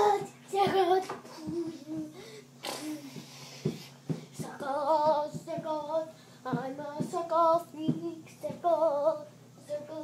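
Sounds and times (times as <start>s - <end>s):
child singing: 0.0s - 2.2s, 4.4s - 10.0s.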